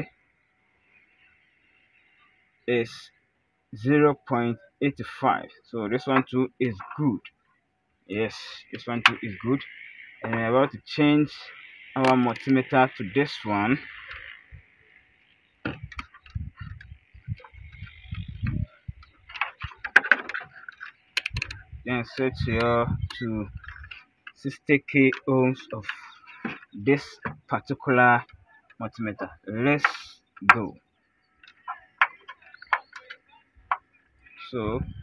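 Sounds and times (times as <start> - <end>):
sharp plastic clicks: 15.6 - 24.4, 31.4 - 33.9.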